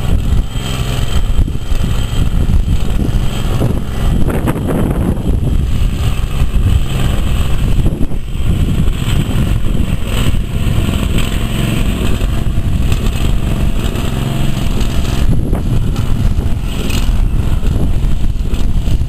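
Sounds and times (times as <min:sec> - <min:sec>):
blade pushing gravel: 0:00.0 - 0:19.0
garden tractor engine running: 0:00.0 - 0:19.0.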